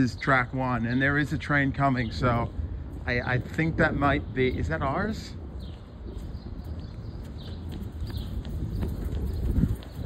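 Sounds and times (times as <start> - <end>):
footsteps on concrete: 5.6 - 10.0.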